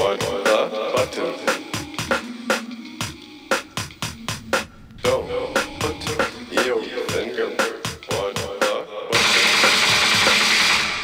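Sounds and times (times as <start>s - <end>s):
loud dense rushing noise: 3.6s - 7.2s.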